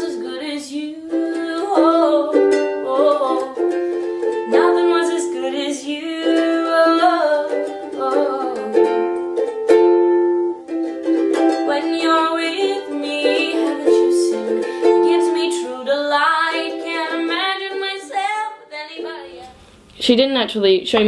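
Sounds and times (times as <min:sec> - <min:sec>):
slow ukulele piece: 0:00.0 - 0:19.7.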